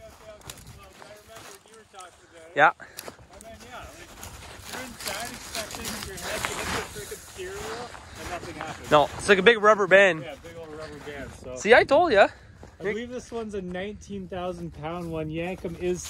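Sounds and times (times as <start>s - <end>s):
footsteps in snow: 0.0s - 11.6s, 12.4s - 16.0s.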